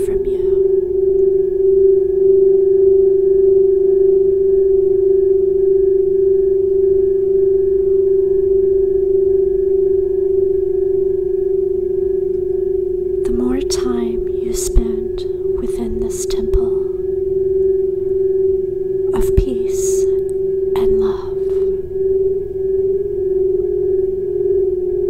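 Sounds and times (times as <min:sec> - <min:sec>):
crystal singing bowls droning: 0:00.0 - 0:25.0.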